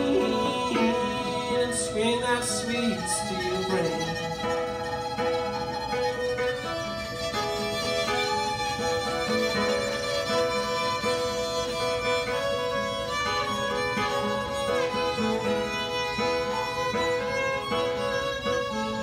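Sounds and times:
acoustic guitar accompaniment: 0.0 - 19.0
fiddles bowing a melody: 0.0 - 19.0.

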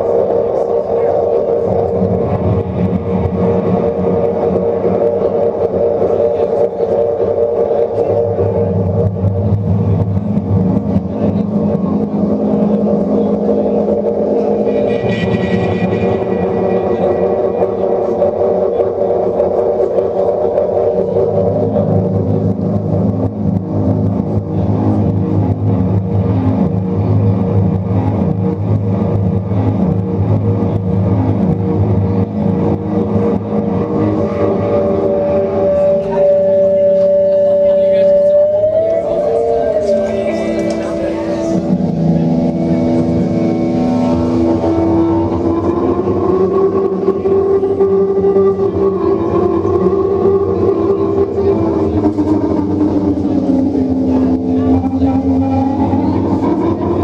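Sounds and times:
distorted rock chords: 0.0 - 57.0
drums: 0.0 - 57.0.

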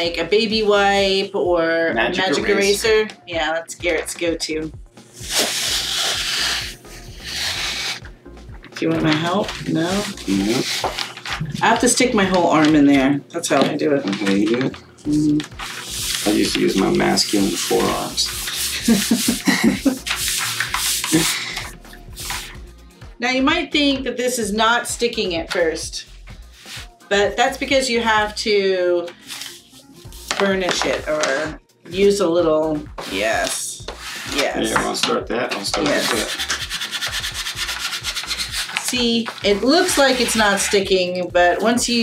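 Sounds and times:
hands rubbing tape on wood: 5.2 - 8.2, 8.9 - 11.8, 15.4 - 22.6, 26.4 - 27.0, 29.2 - 31.4, 32.9 - 35.0, 35.7 - 41.1.

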